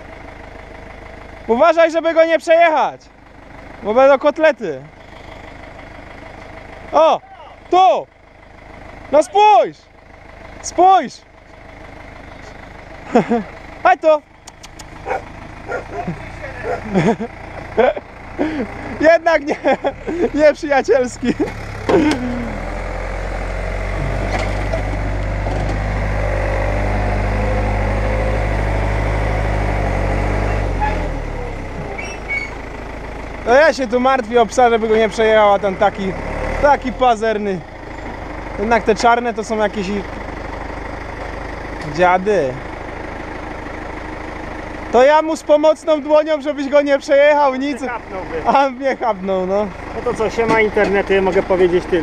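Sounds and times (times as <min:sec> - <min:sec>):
tractor diesel engine running: 0:00.0 - 0:52.0.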